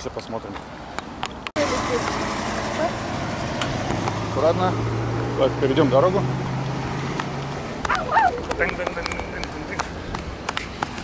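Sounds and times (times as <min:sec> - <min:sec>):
cars driving past: 0:00.7 - 0:11.0.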